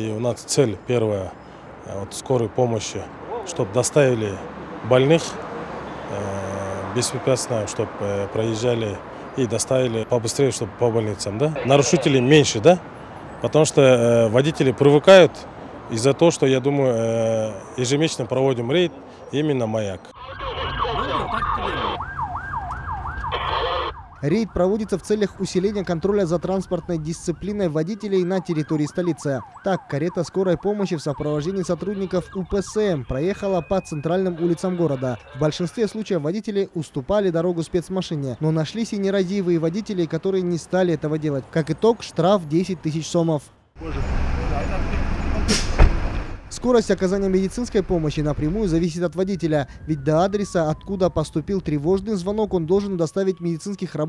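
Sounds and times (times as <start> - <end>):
traffic rumble: 0.0 - 54.0
lower siren: 20.0 - 36.0, 48.0 - 54.0
yelping siren: 20.0 - 36.0, 48.5 - 54.0
short sharp hiss: 45.5 - 46.3
low thump: 45.6 - 46.3.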